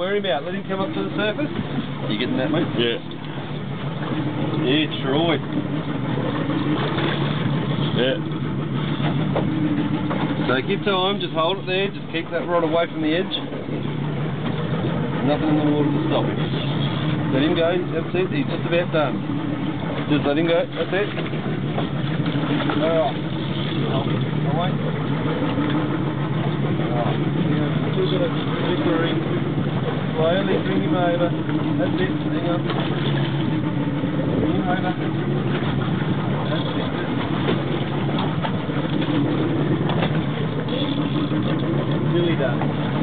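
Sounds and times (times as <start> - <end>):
boat motor idling: 0.0 - 43.0.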